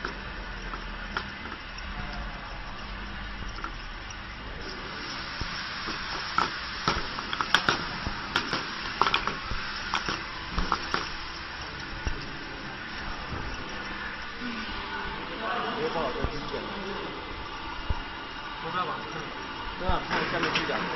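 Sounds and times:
steady hiss: 0:00.0 - 0:20.9
plastic bottles clicking and knocking: 0:05.9 - 0:11.2.

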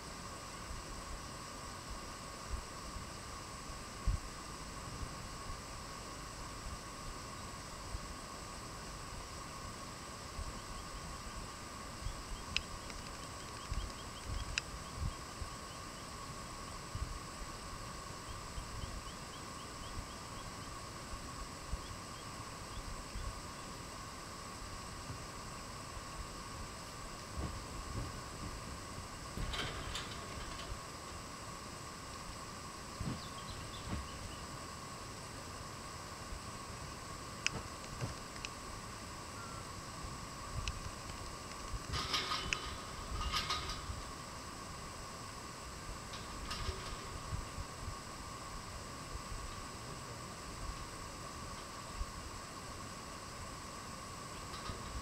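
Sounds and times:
faint steady whine: 0:00.0 - 0:55.0
light clicks: 0:12.5 - 0:14.7.

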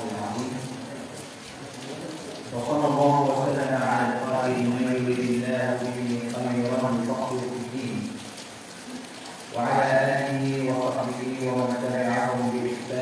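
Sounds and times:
man chanting: 0:02.5 - 0:08.2, 0:09.6 - 0:13.0.

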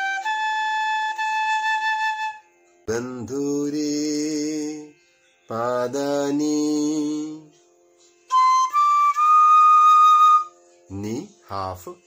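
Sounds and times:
man singing long held tones: 0:02.9 - 0:07.6.

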